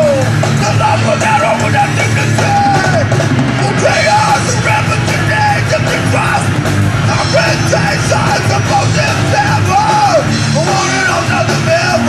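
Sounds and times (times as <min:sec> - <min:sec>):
rock band playing: 0:00.0 - 0:12.0
singer yelling into microphone: 0:00.0 - 0:12.0.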